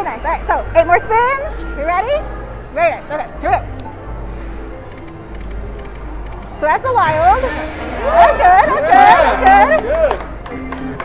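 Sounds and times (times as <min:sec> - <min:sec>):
low casino floor hum: 0:02.1 - 0:11.0
slot machine electronic spin sounds: 0:06.9 - 0:09.8.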